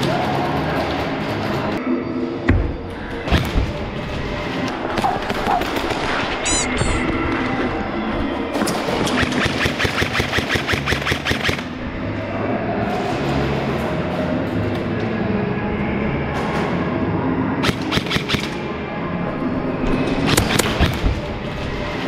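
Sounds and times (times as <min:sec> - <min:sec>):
music: 0:00.0 - 0:22.0
airsoft gun rapid shots: 0:09.0 - 0:11.7, 0:17.6 - 0:18.6.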